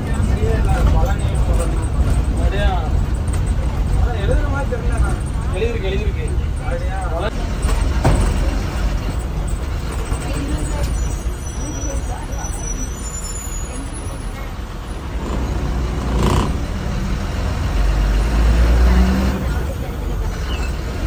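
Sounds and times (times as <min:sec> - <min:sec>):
bus diesel engine rumbling: 0:00.0 - 0:21.0.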